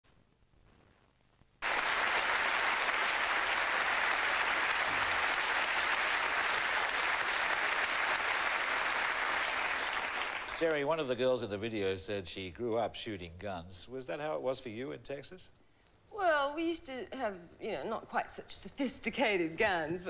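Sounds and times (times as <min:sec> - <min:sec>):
audience applauding: 0:01.6 - 0:10.8.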